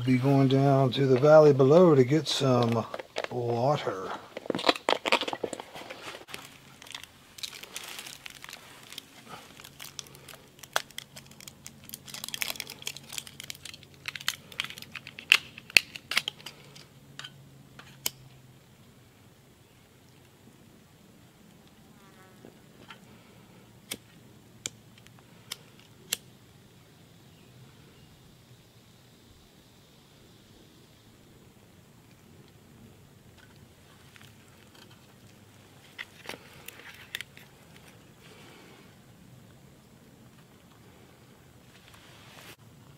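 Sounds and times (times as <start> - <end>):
plastic wrapping crinkling: 2.6 - 16.6.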